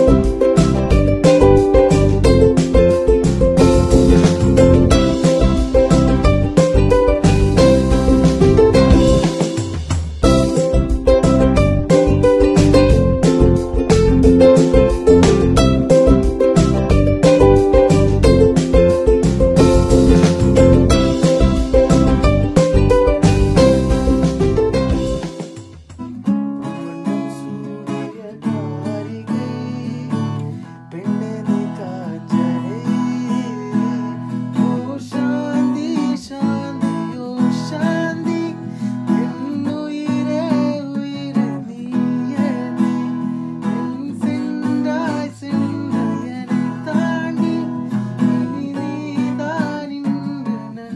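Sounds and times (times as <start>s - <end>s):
acoustic guitar strumming: 0.0s - 50.9s
man singing: 26.6s - 50.9s.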